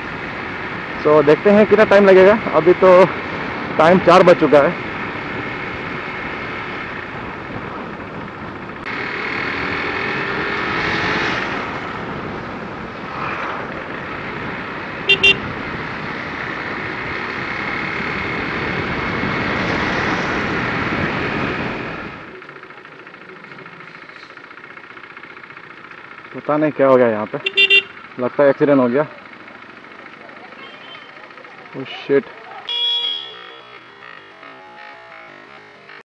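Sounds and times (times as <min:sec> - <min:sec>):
motorcycle engine: 0:00.0 - 0:36.0
horn beeps: 0:15.1 - 0:15.4, 0:27.4 - 0:28.0, 0:30.5 - 0:31.3, 0:32.6 - 0:35.2.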